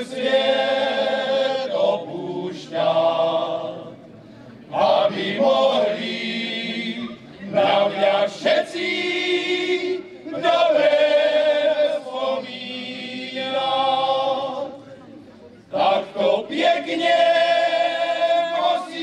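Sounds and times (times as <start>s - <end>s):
male choir singing unaccompanied: 0.0s - 15.1s, 15.7s - 19.0s.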